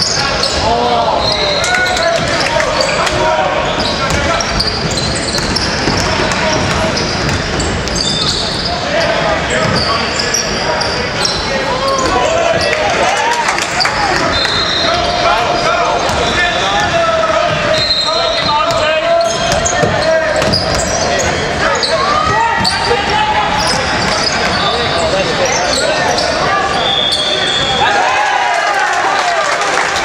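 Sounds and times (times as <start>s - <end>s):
sneakers squeaking: 0.0s - 13.1s, 13.7s - 27.9s.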